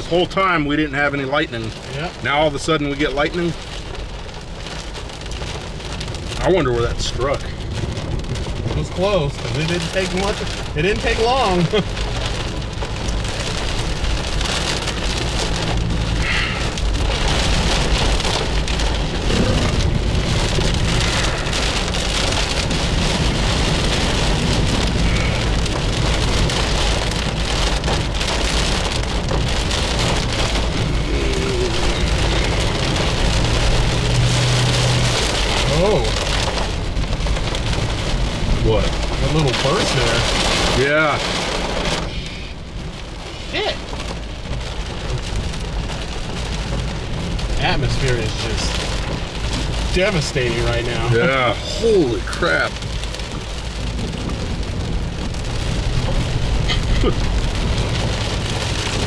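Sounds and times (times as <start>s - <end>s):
heavy rain drumming on car roof: 0.0s - 59.0s
road and engine rumble: 0.0s - 59.0s.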